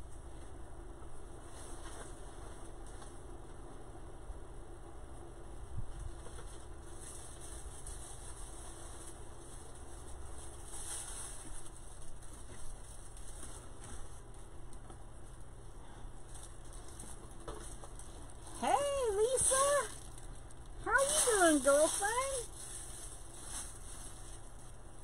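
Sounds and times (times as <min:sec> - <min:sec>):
faint rustling: 0:00.0 - 0:03.6, 0:05.7 - 0:25.0
steady low hum: 0:00.0 - 0:25.0.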